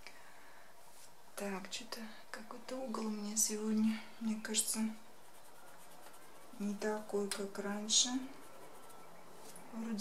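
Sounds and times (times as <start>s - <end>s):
woman speaking softly: 1.4s - 5.1s, 6.6s - 8.5s, 9.7s - 10.0s
pencil scratching on paper: 5.1s - 9.2s.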